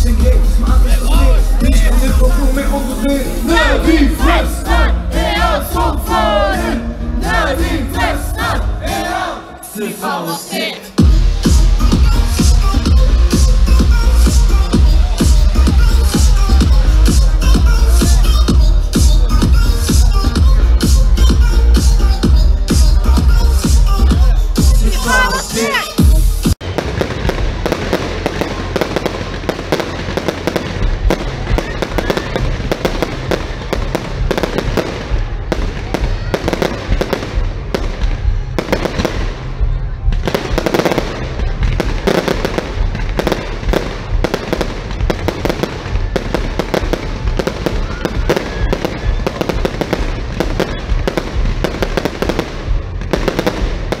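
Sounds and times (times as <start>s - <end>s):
live concert music: 0.0s - 54.0s
fireworks crackling and banging: 10.9s - 54.0s.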